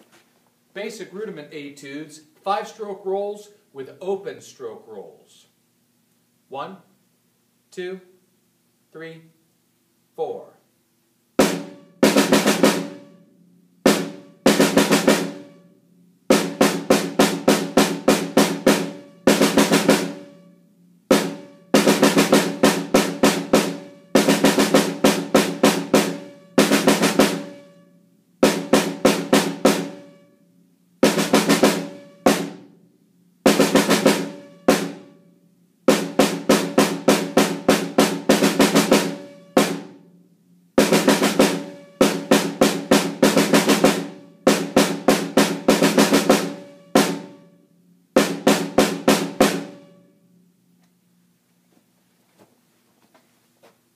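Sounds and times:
snare drum rolls: 0:11.4 - 0:13.2, 0:13.8 - 0:15.7, 0:16.3 - 0:20.4, 0:21.1 - 0:27.7, 0:28.4 - 0:30.3, 0:31.0 - 0:32.7, 0:33.4 - 0:35.2, 0:35.9 - 0:40.1, 0:40.8 - 0:47.5, 0:48.2 - 0:50.0.

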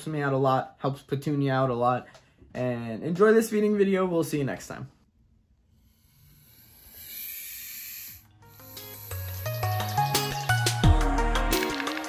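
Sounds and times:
snake hissing: 0:05.7 - 0:10.8
electronic music: 0:07.5 - 0:12.0.

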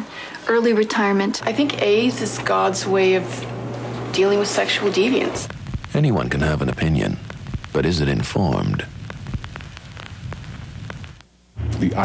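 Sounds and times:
crackling noise: 0:01.3 - 0:12.0
low hum: 0:01.6 - 0:12.0
scattered clicks: 0:05.4 - 0:11.3.

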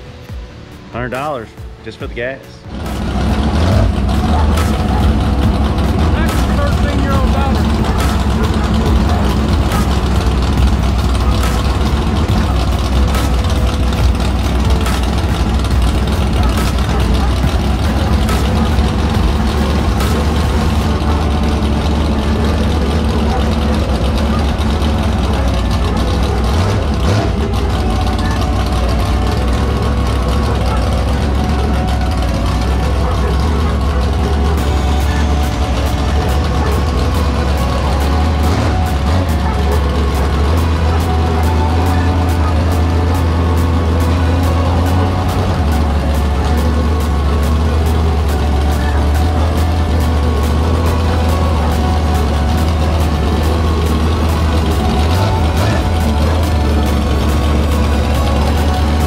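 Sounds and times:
race car engine idling: 0:00.0 - 0:59.0.

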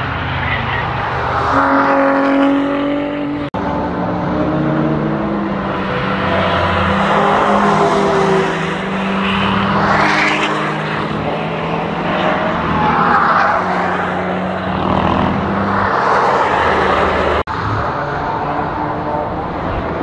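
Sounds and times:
race cars driving past: 0:00.0 - 0:20.0.

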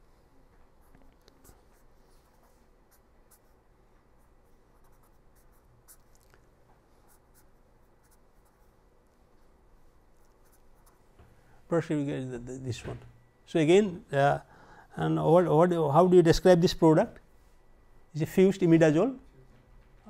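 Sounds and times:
pen scratching on paper: 0:04.8 - 0:06.0.

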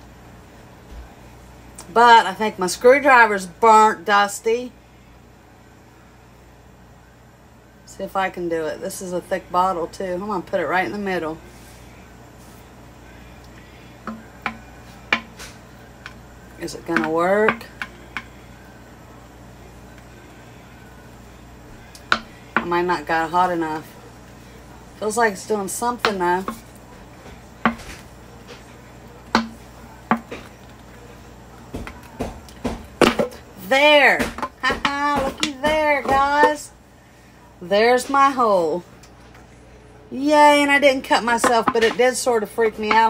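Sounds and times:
faint low hum: 0:00.0 - 0:43.0.

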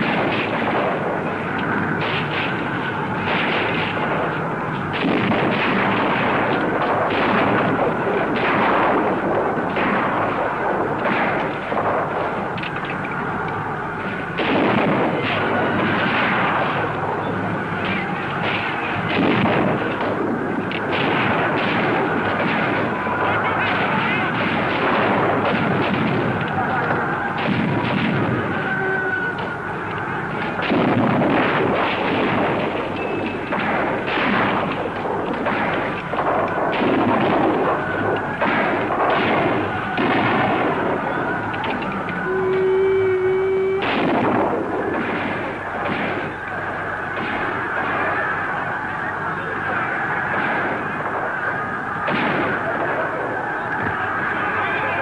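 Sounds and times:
rifles firing: 0:00.0 - 0:42.4, 0:43.8 - 0:55.0
people shouting: 0:19.8 - 0:55.0.

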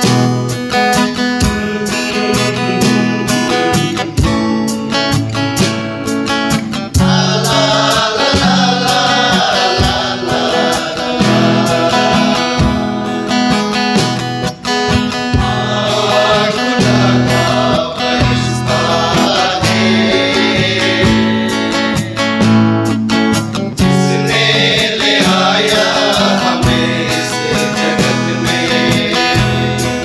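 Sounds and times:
strummed acoustic guitar: 0:00.0 - 0:30.0
men's vocal group singing: 0:00.7 - 0:14.2, 0:14.8 - 0:23.0, 0:23.8 - 0:30.0.

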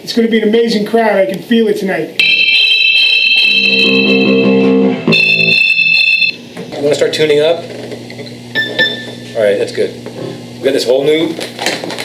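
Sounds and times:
high-pitched electronic beep: 0:02.2 - 0:06.4
man talking: 0:09.3 - 0:10.0, 0:10.6 - 0:11.4.

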